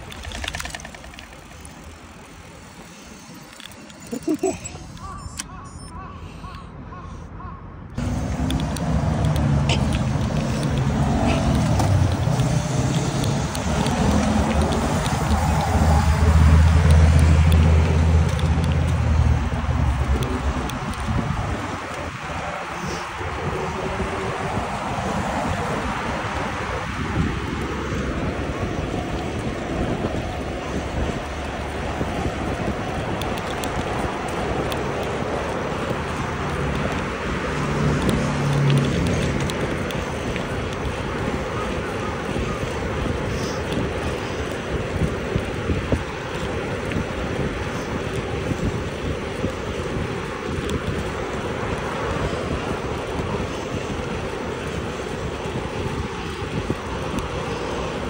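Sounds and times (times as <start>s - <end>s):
cars passing on road: 0.0s - 58.0s.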